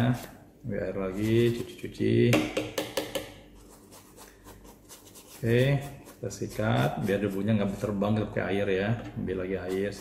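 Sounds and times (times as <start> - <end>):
brush scrubbing fabric: 3.6 - 7.8, 9.6 - 10.0.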